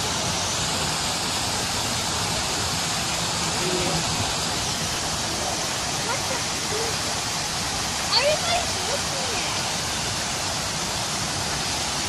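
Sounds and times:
fountain water jets spraying: 0.0s - 12.0s.

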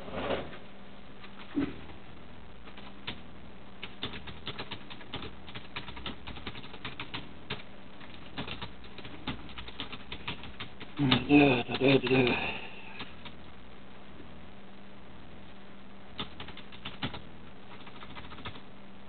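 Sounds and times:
faint steady hum: 0.0s - 19.0s.

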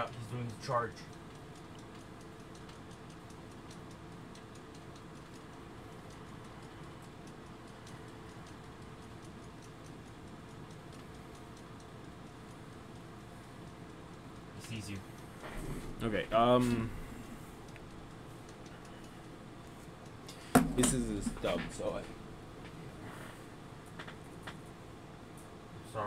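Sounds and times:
faint even ticking: 0.0s - 25.6s
steady low hum: 0.0s - 26.0s.

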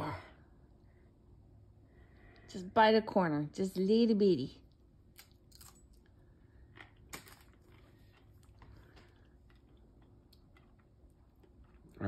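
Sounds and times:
chip crunching: 5.1s - 12.0s.

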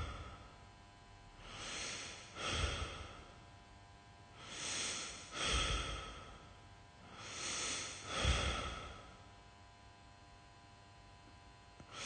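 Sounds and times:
heavy human breathing: 0.0s - 0.6s, 1.4s - 3.4s, 4.3s - 9.3s.

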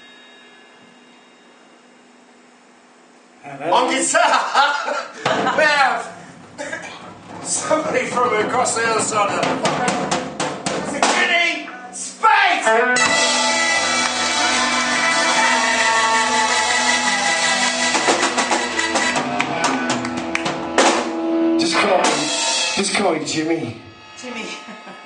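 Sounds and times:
live band playing loudly: 13.0s - 23.0s.

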